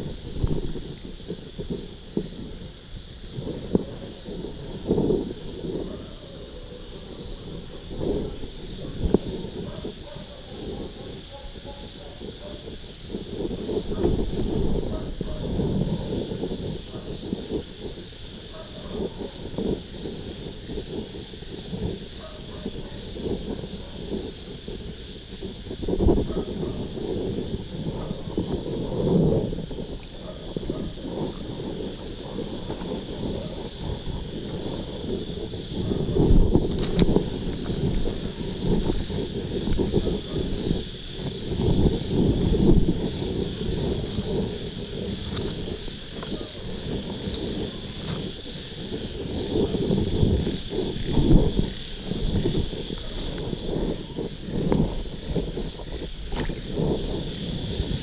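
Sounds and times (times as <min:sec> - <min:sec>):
night insects chirring: 0:00.0 - 0:58.0
rustling through vegetation: 0:03.3 - 0:40.2, 0:41.0 - 0:58.0.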